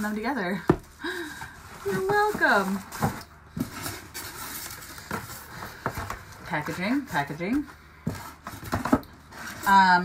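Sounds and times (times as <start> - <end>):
cardboard box rustling and scraping: 1.6 - 10.0.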